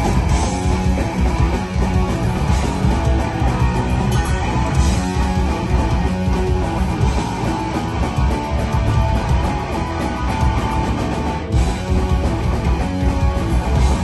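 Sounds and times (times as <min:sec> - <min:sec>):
distorted electric guitars: 0:00.0 - 0:14.0
drums: 0:00.0 - 0:14.0
electric bass: 0:00.0 - 0:14.0.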